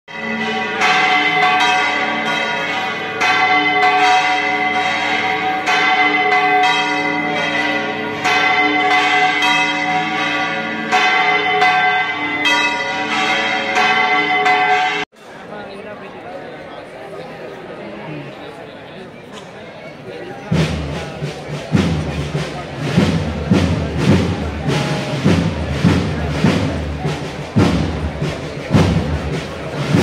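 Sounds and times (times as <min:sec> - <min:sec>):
church bells ringing: 0:00.1 - 0:15.2.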